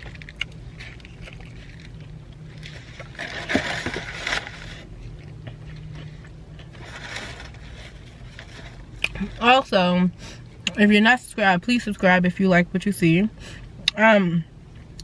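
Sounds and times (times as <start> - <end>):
crunching and scraping of food: 0.0 - 10.7
steady low hum: 0.0 - 15.0.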